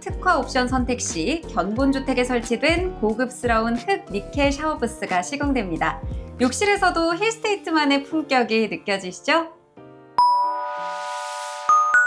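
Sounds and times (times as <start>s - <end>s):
bell-like ding: 10.2s - 11.0s, 11.7s - 12.0s
high chime notes: 10.2s - 12.0s.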